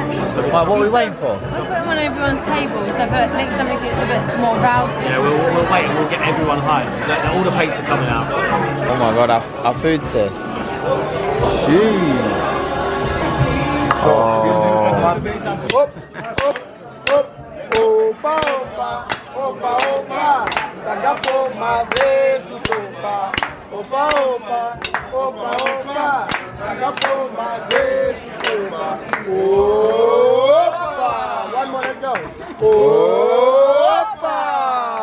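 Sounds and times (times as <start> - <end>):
group clapping a beat: 15.7 - 30.0.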